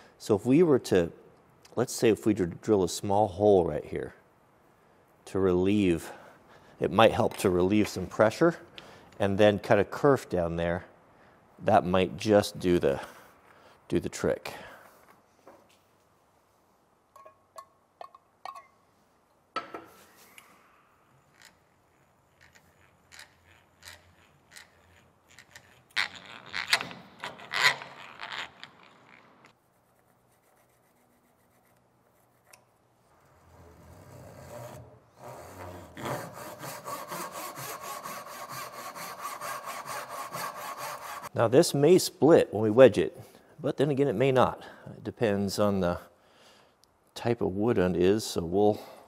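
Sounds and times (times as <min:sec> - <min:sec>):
hand drill boring into wood: 0:22.4 - 0:26.9
backsaw cutting wood: 0:33.4 - 0:41.3.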